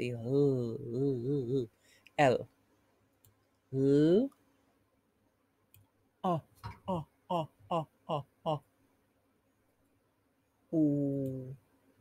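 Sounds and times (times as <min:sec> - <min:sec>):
woman's drawn-out syllable: 0:00.0 - 0:02.4, 0:06.2 - 0:08.6, 0:10.8 - 0:11.6.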